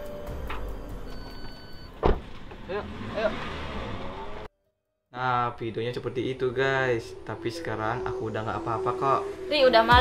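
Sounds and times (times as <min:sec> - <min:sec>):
car door shutting: 0:00.3 - 0:02.7.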